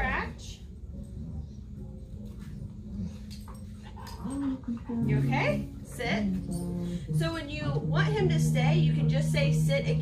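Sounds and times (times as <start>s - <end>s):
dog whining: 2.7s - 5.7s.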